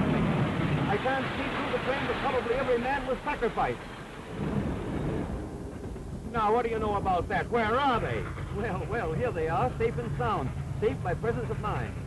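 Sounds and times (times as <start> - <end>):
train passing rumble: 0.0 - 12.0.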